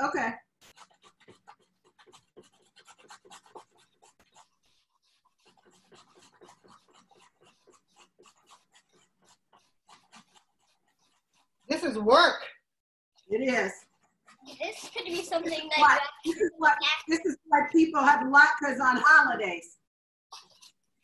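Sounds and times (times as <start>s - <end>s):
grating on metal grater: 0.6s - 12.2s, 13.2s - 17.2s, 20.3s - 21.0s.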